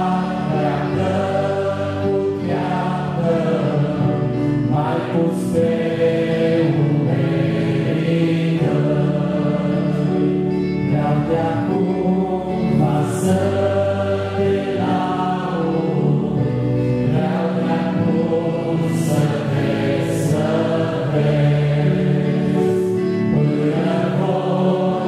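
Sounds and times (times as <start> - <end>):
two men singing a hymn: 0.0 - 25.0.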